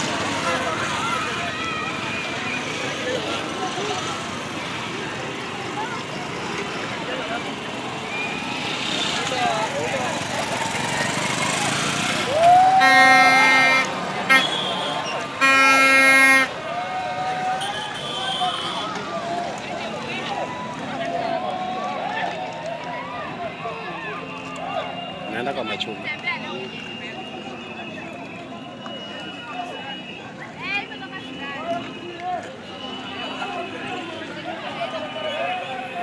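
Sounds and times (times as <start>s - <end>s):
crowd voices shouting: 0.0s - 36.0s
loud horn blasts: 12.6s - 16.6s, 17.6s - 19.0s.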